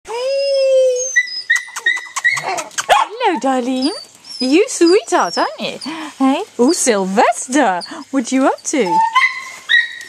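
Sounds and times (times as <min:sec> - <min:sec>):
puppy whining: 0:00.1 - 0:06.0, 0:07.4 - 0:10.0.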